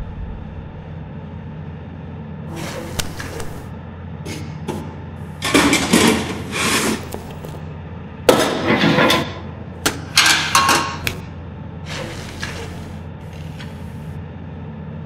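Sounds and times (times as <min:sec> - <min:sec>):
low steady hum: 0:00.0 - 0:08.5
metal toolbox clanking and rattling: 0:05.4 - 0:07.4.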